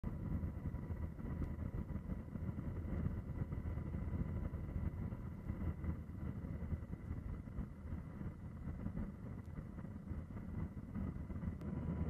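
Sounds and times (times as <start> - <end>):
aircraft engine and airflow rumble: 0.0 - 12.0
faint steady whine: 0.0 - 12.0.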